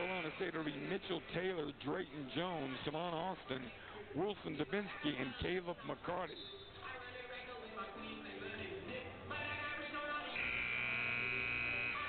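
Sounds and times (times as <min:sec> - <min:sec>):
arena buzzer: 0:00.0 - 0:00.5, 0:10.4 - 0:12.0.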